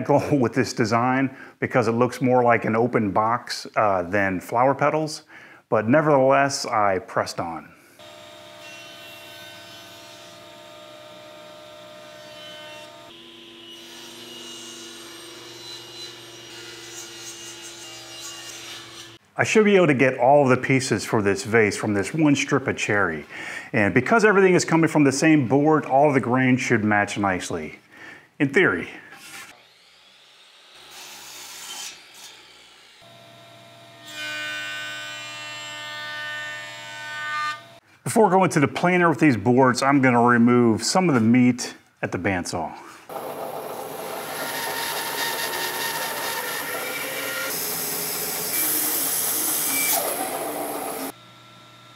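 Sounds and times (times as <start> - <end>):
jointer cutting a board: 43.1 - 51.2
table saw ripping a board: 43.1 - 51.2.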